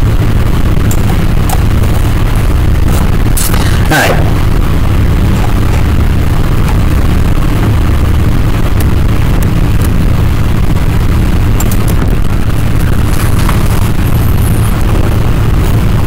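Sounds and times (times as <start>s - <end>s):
low rumble and hiss: 0.0s - 16.0s.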